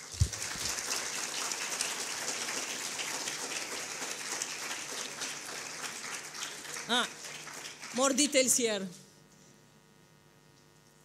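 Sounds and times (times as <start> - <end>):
audience applauding: 0.0 - 8.6.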